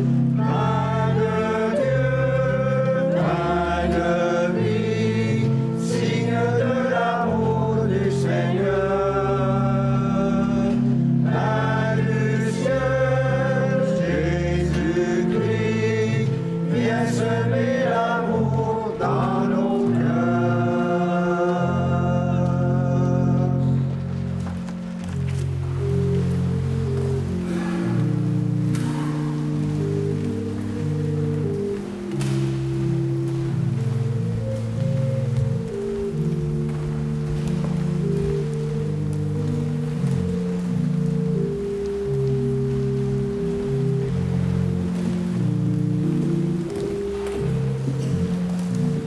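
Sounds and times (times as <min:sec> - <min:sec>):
pipe organ chords: 0:00.0 - 0:49.0.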